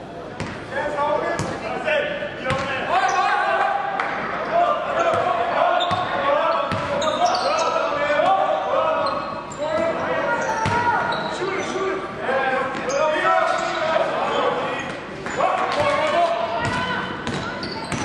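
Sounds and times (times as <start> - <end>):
basketball bouncing on gym court: 0.4 - 0.6, 6.7 - 7.0, 10.6 - 10.9, 16.6 - 18.0.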